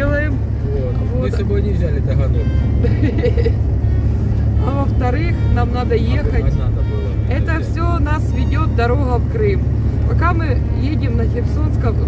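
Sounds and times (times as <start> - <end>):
car cabin road and engine rumble: 0.0 - 12.0
quiet talking: 0.0 - 12.0.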